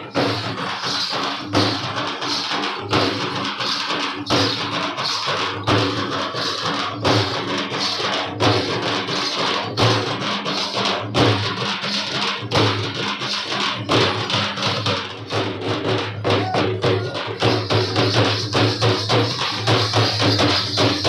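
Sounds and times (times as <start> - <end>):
percussion dance music with drums: 0.0 - 21.0.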